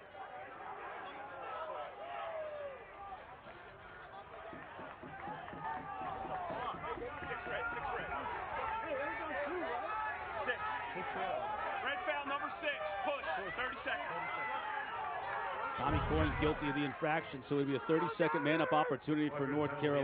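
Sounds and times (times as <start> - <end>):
crowd voices calling out: 0.0 - 20.0.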